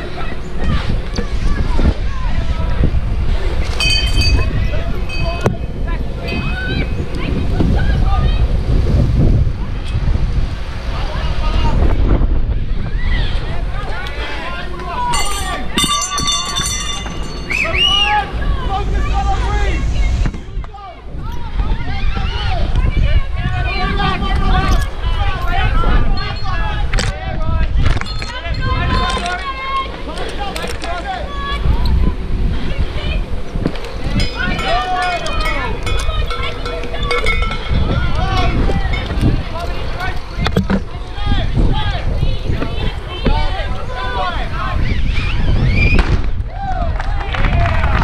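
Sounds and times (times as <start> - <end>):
wind rumble on microphone: 0.0 - 48.0
raised voices shouting: 12.6 - 45.9.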